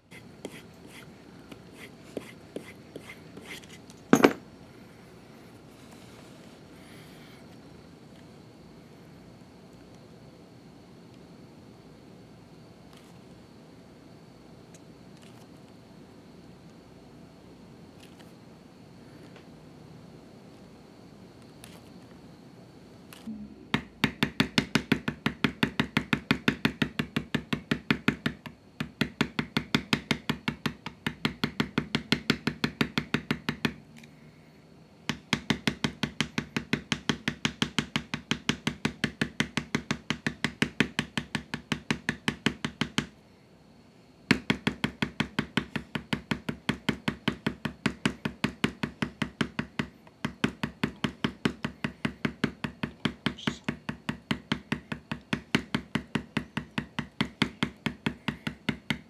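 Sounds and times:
mallet tapping leather stamp: 4.1 - 4.4, 23.7 - 33.8, 35.1 - 43.1, 44.3 - 59.0.

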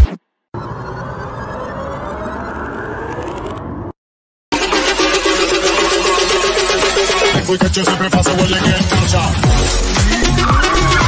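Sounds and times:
faint whine rising in pitch: 0.5 - 4.0.

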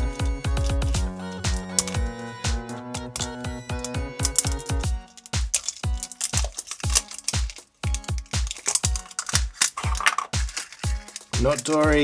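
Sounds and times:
electronic music with kick drum: 0.0 - 6.0, 10.4 - 12.0.

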